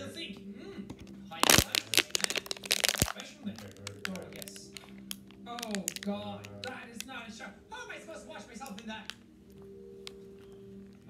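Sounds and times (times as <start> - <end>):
plastic bottle crackling: 1.0 - 7.2, 8.6 - 11.0.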